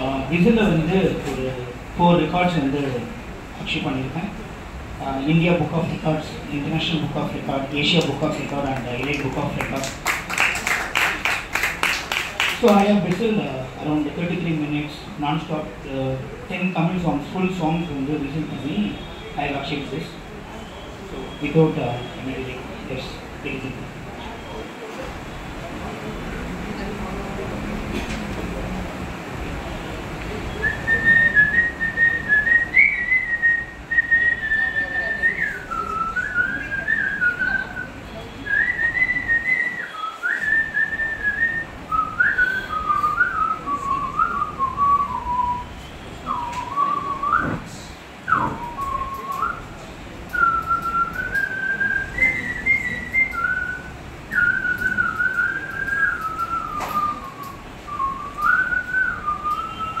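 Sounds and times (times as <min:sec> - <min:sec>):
man whistling a melody: 0:30.6 - 0:47.6, 0:48.3 - 1:00.0.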